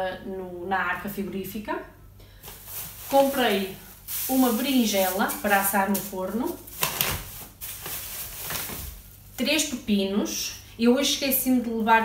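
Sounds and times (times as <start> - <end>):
plastic bag rustling: 2.4 - 9.8.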